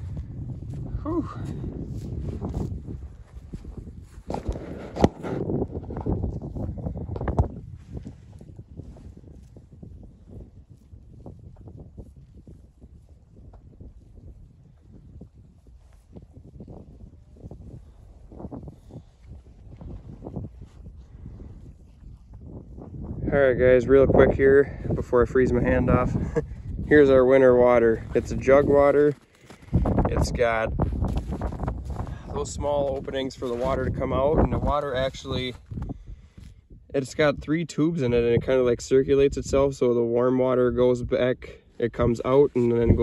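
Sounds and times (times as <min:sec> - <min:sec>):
low wind rumble: 0:00.0 - 0:43.0
snow crunching: 0:26.2 - 0:29.9, 0:30.5 - 0:33.9.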